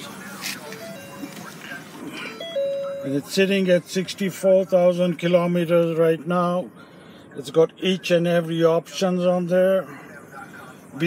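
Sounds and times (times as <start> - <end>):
car electronic chime: 0.6 - 3.5.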